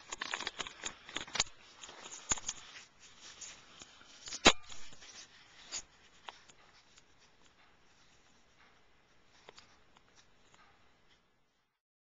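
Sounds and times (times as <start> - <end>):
scratchy handling rub: 0.3 - 11.2.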